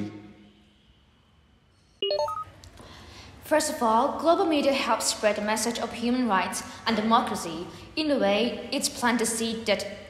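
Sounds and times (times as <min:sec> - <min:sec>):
rising electronic beeps: 0:02.0 - 0:02.5.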